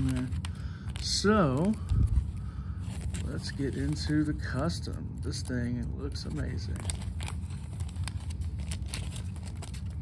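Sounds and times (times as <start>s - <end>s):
plastic wrap crinkling: 0.0s - 10.0s
steady low rumble: 0.0s - 10.0s.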